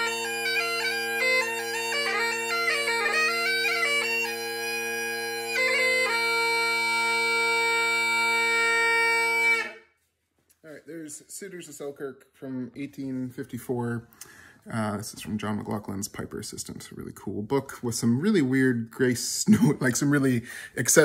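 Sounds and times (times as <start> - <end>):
bagpipe melody over drones: 0.0 - 9.8.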